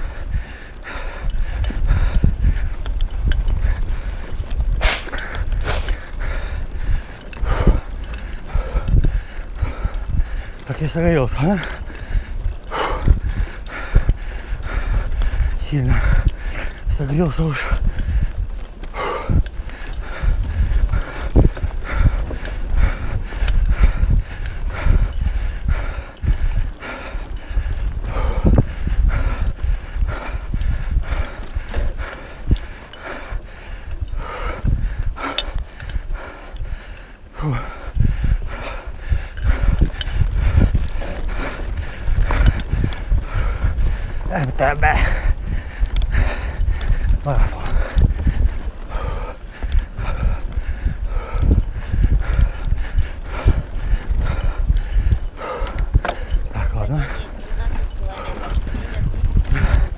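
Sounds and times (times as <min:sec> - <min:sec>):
bike rattling and knocking: 0:00.0 - 0:59.9
wind rumble on microphone: 0:00.0 - 0:59.9.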